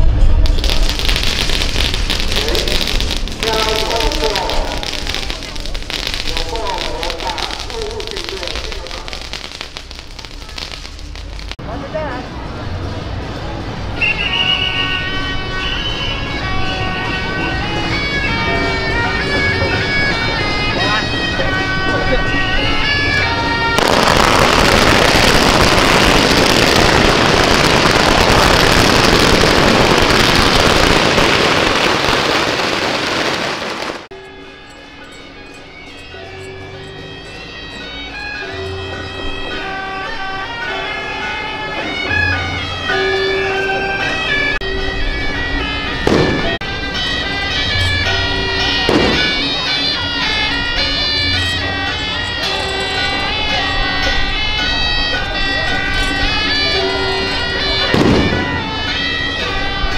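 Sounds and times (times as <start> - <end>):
firecrackers crackling: 0.0 - 12.1, 17.0 - 34.2, 45.5 - 59.9
festival music with wind instrument: 0.0 - 59.9.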